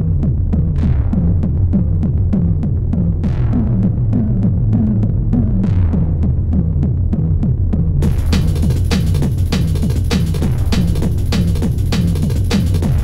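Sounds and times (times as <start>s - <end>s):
distorted kick drum pounding: 0.0s - 13.0s.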